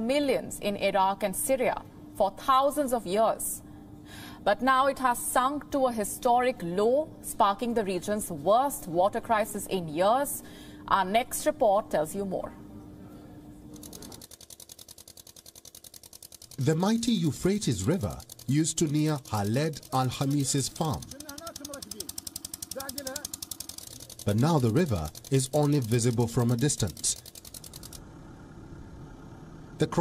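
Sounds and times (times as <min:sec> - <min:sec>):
faint steady hum: 0:00.0 - 0:14.3
mechanical rattling hum: 0:00.0 - 0:30.0
fast even ticking: 0:13.8 - 0:28.0
person narrating: 0:16.6 - 0:22.1, 0:24.2 - 0:27.2.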